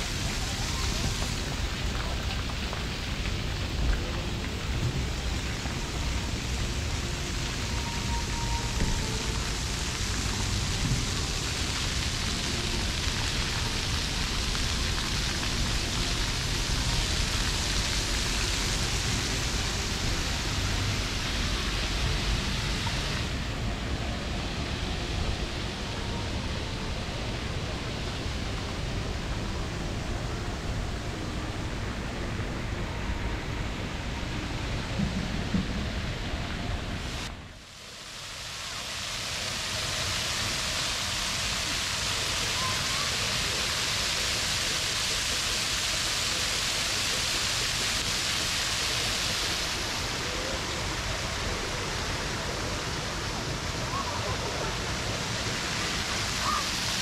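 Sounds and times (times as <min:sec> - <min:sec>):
water spraying from fountains: 0:00.0 - 0:57.0.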